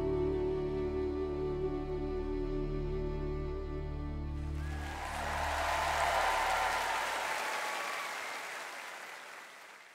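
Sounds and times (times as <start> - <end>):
audience applauding: 4.4 - 9.9.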